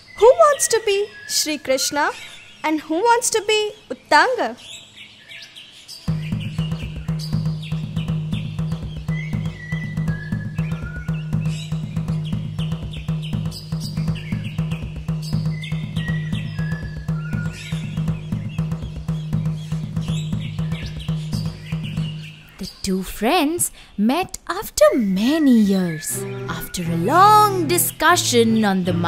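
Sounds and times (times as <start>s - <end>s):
quick drum beat: 6.1s - 22.5s
high melody: 26.0s - 29.0s.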